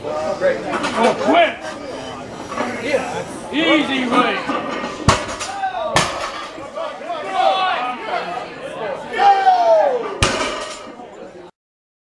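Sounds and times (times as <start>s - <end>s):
onlookers shouting: 6.8s - 10.2s.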